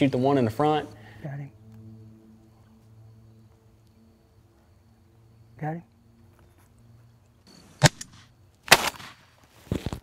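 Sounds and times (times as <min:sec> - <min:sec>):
shotgun blast with echo: 0:07.8 - 0:09.2
sharp crack: 0:07.8 - 0:10.0.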